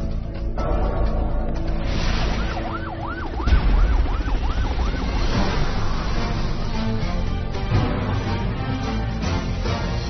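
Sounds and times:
electronic siren yelping: 0:02.4 - 0:05.6.

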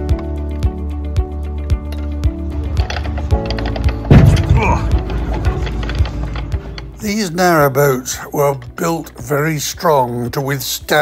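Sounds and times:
background music with steady beat: 0:00.0 - 0:11.0
steel hull bumping heavy thump: 0:04.1 - 0:05.0.

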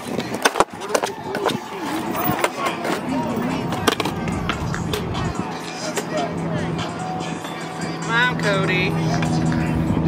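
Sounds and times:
skateboard clacks: 0:00.0 - 0:05.2
skateboard wheels rolling: 0:00.0 - 0:08.1.

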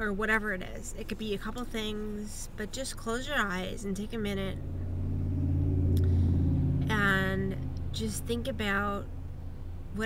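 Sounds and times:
car engine hum inside cabin: 0:00.0 - 0:10.0.

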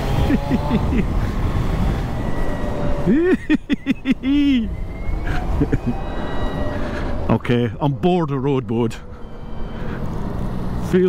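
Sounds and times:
wind and road rush: 0:00.0 - 0:11.0.

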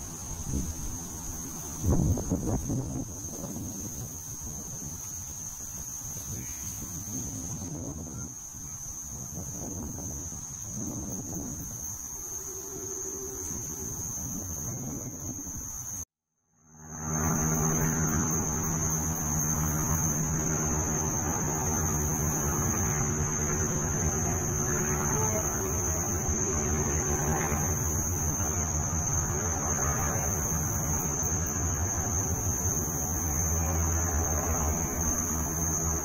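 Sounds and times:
high-pitched whine: 0:16.6 - 0:36.0
steady low hum: 0:16.7 - 0:36.0.

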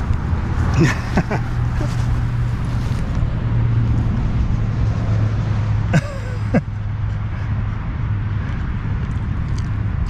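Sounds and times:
low engine hum: 0:00.0 - 0:10.0
outdoor background noise: 0:00.0 - 0:10.0.

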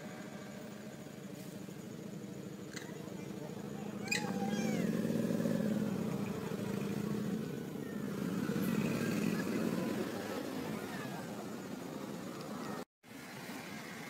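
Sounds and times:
vehicle engine running: 0:00.0 - 0:12.8.

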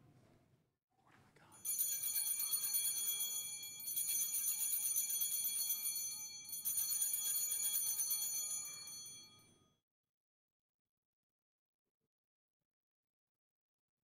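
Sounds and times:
altar bells jingling: 0:01.6 - 0:09.5.

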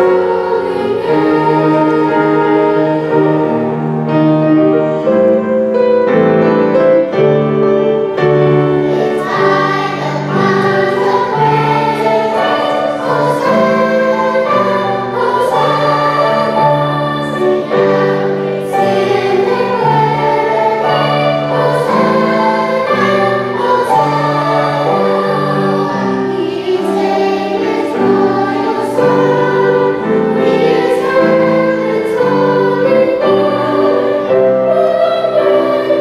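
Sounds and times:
children's choir singing a hymn: 0:00.0 - 0:36.0
piano accompaniment: 0:00.0 - 0:36.0.

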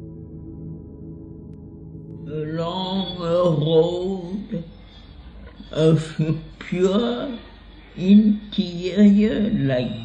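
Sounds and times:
soft ambient music drone: 0:00.0 - 0:10.0
woman reciting verse: 0:02.3 - 0:10.0.

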